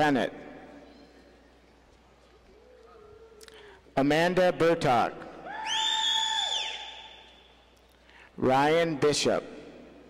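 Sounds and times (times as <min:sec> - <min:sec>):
high-pitched woo cheer: 0:05.4 - 0:07.4.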